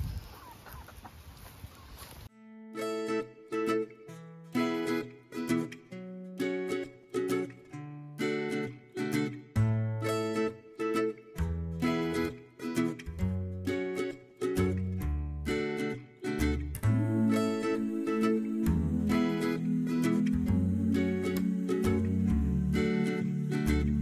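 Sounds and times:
plucked-string tune: 0:02.4 - 0:24.0
bass line: 0:16.4 - 0:24.0.

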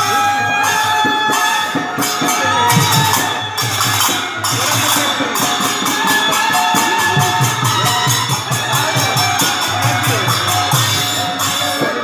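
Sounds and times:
group devotional chanting: 0:00.0 - 0:12.0
jingling hand cymbals: 0:00.0 - 0:12.0
drum strokes: 0:01.3 - 0:12.0.

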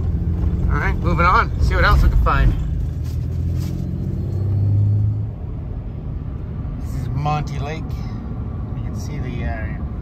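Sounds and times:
road noise: 0:00.0 - 0:10.0
truck engine drone: 0:00.0 - 0:10.0.

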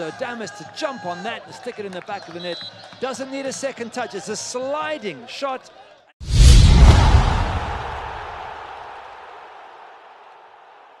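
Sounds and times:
deep boom: 0:06.2 - 0:08.6.

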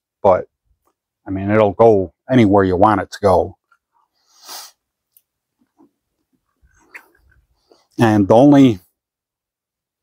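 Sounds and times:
man speaking: 0:00.2 - 0:00.5, 0:01.2 - 0:03.6, 0:08.0 - 0:08.9
soft intake of breath: 0:04.1 - 0:04.9
man sniffing: 0:04.2 - 0:04.9.

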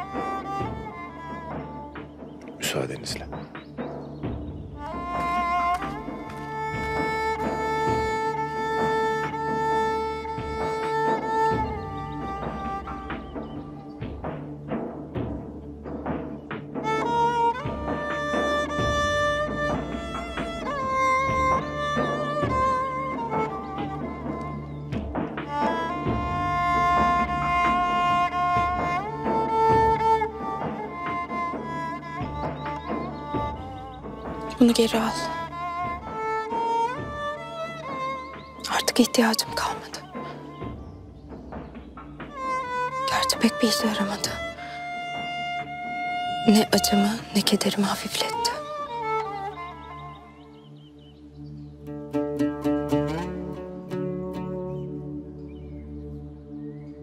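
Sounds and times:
sad bowed strings music: 0:00.0 - 0:57.0
low string drone: 0:42.2 - 0:57.0.

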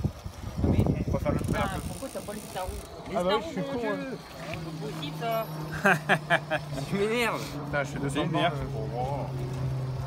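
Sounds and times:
low wind rumble on microphone: 0:00.0 - 0:03.1
voices speaking: 0:00.7 - 0:10.0.

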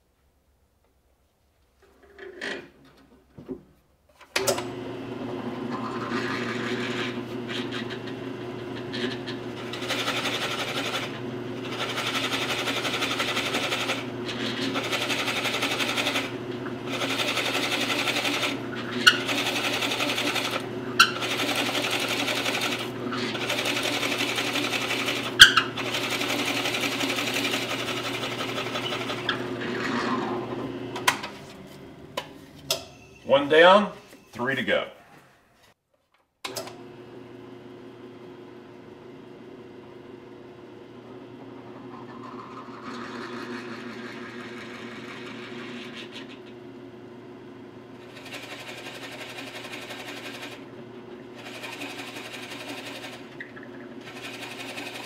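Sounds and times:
drill press motor: 0:04.4 - 0:31.6, 0:41.4 - 0:46.9, 0:48.0 - 0:55.0
drill bit boring into wood: 0:05.9 - 0:30.5.

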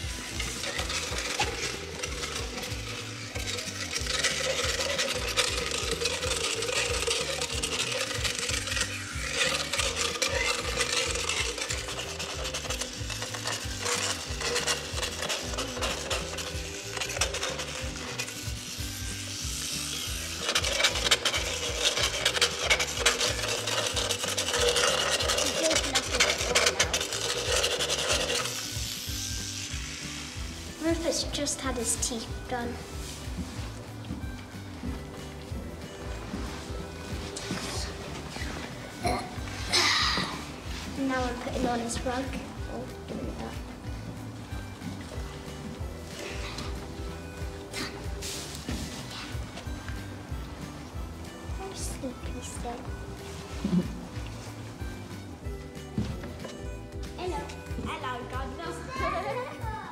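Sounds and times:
dental float grinding teeth: 0:00.0 - 0:32.0, 0:34.9 - 0:50.1
background music with bass line: 0:00.0 - 0:59.9.

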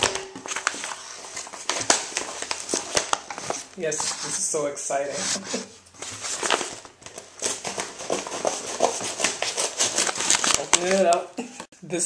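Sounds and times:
packaging crinkling: 0:00.0 - 0:04.4, 0:06.0 - 0:11.3.

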